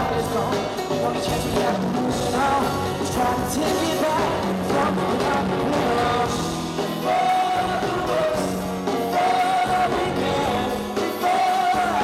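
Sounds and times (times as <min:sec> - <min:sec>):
pop-rock band playing: 0:00.0 - 0:12.0.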